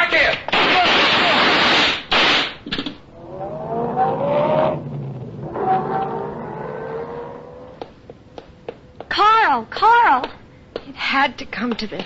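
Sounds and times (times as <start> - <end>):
car engine accelerating: 3.1 - 8.0.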